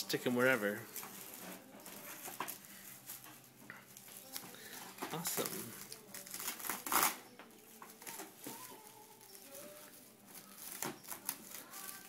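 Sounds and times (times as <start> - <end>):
plastic cling wrap crinkling: 0.0 - 12.0.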